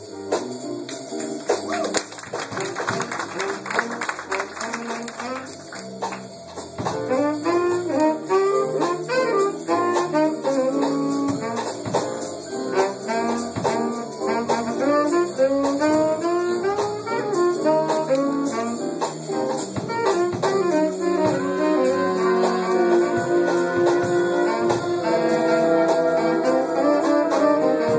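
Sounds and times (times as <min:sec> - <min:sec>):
jazz horn section playing: 0:00.0 - 0:27.9.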